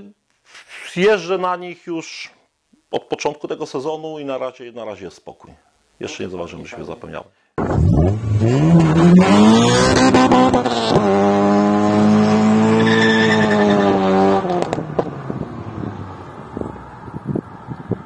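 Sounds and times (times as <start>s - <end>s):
car engine revving hard: 7.7s - 15.1s.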